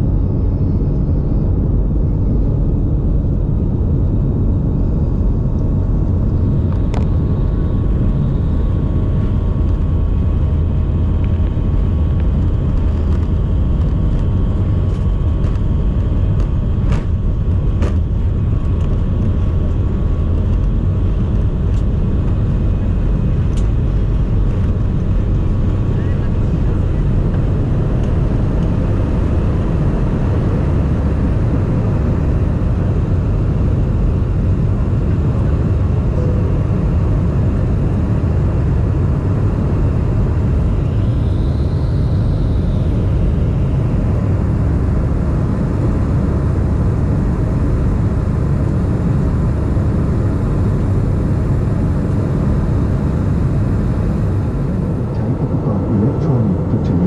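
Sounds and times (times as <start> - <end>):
jet engines at takeoff thrust: 0.0 - 57.0.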